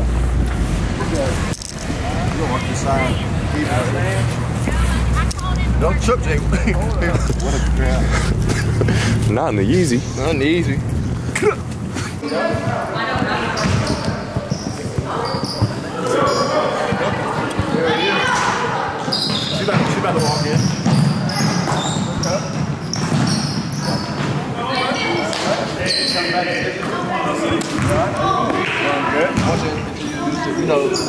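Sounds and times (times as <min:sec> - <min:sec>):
children's voices: 0:01.8 - 0:09.3, 0:11.3 - 0:19.1
basketballs bouncing on hardwood floor: 0:12.5 - 0:15.8, 0:19.2 - 0:24.4.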